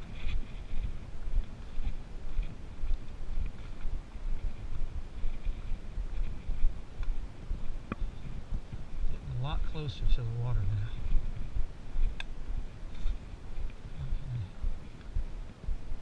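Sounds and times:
footsteps on dirt trail: 0.0 - 16.0
low rumble: 0.0 - 16.0.

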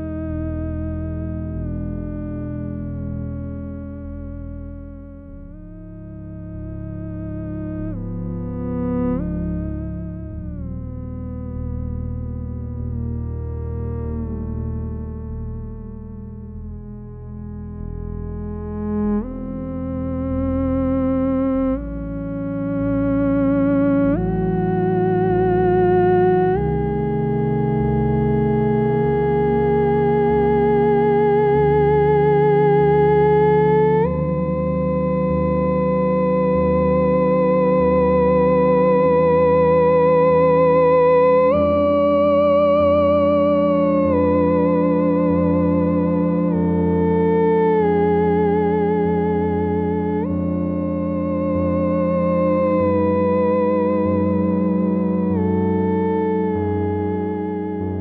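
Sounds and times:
theremin melody with vibrato: 0.0 - 15.8, 16.5 - 58.0
low backing music: 0.0 - 58.0.

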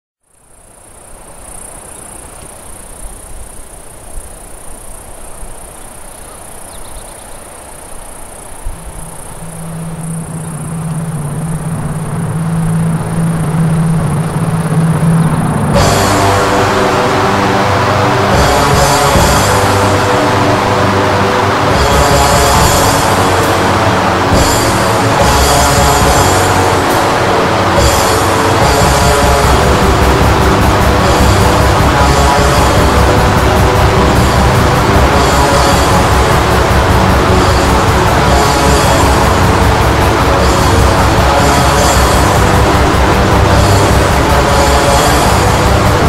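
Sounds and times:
hissing ambient intro: 0.3 - 46.0
low sustained note: 8.3 - 46.0
distorted guitars: 9.3 - 46.0
drums: 9.6 - 46.0.

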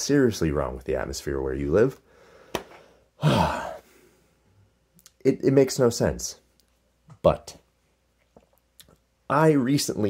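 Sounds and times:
man sighing: 3.2 - 4.2.

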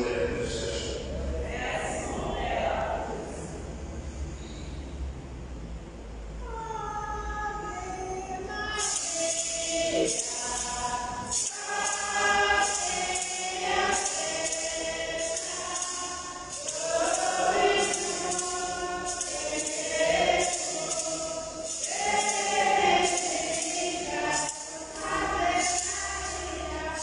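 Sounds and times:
choir singing a hymn: 0.0 - 3.6, 7.7 - 27.0
hand percussion beat: 8.6 - 27.0.

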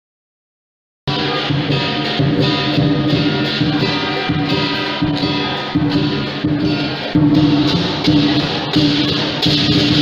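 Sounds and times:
rhythmic music with sustained tones: 1.1 - 10.0.

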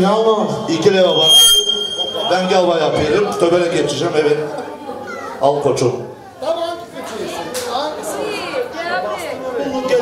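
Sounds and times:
chatter of voices: 2.1 - 10.0.

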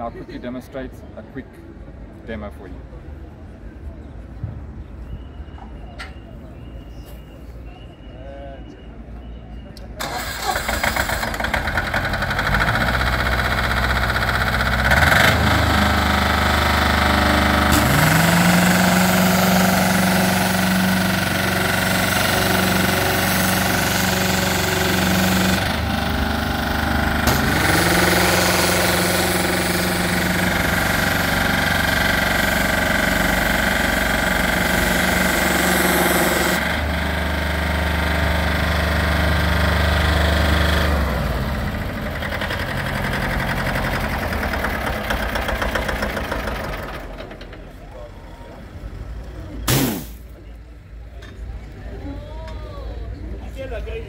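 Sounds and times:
diesel engine running: 10.0 - 50.9.

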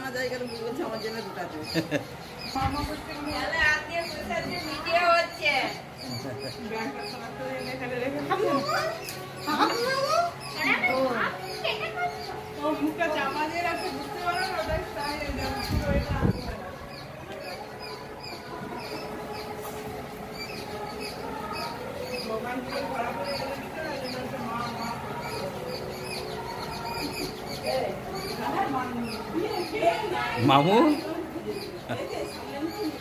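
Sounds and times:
chatter of voices: 0.0 - 33.0.

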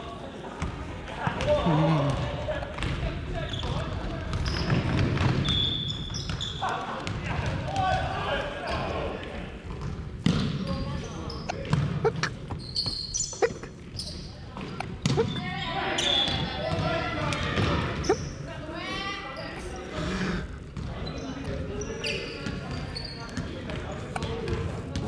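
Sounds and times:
players' voices: 0.0 - 25.0
volleyballs smacking in a gym: 0.6 - 18.4, 22.4 - 25.0.

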